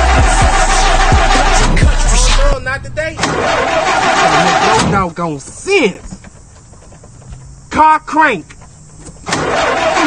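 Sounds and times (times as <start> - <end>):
car engine cranking: 0.0 - 7.7, 8.5 - 10.0.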